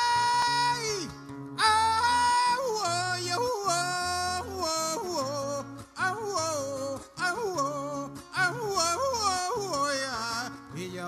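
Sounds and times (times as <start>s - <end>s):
person singing long high notes: 0.0s - 10.5s
guitar accompaniment: 0.0s - 11.0s.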